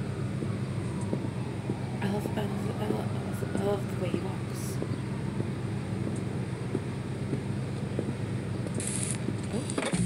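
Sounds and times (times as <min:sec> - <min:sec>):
car engines idling: 0:00.0 - 0:10.0
wind noise: 0:00.0 - 0:10.0
faint crackles: 0:00.3 - 0:10.0.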